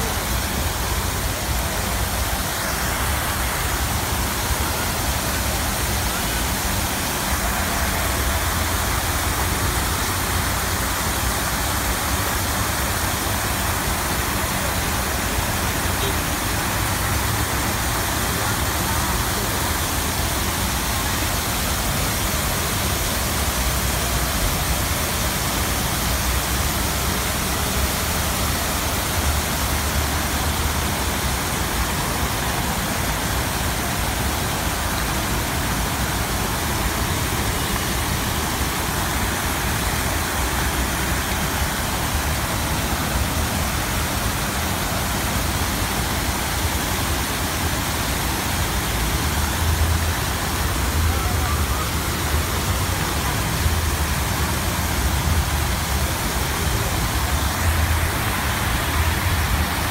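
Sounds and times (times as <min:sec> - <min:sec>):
fountain jets splashing into pool: 0:00.0 - 0:59.9.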